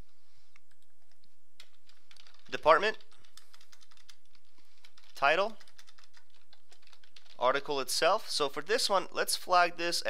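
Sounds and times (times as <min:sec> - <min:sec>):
keyboard typing: 0:00.5 - 0:07.4.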